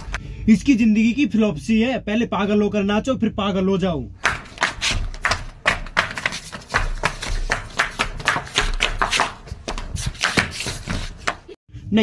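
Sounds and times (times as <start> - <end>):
man speaking: 0.5 - 4.1.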